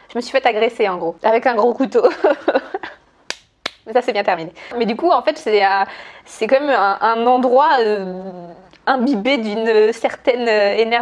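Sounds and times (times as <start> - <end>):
woman laughing: 2.0 - 3.0
finger snaps: 3.3 - 3.9.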